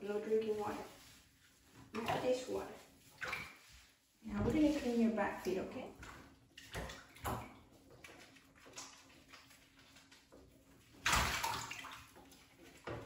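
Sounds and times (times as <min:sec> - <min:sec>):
hand splashing bathwater: 0:00.0 - 0:13.0.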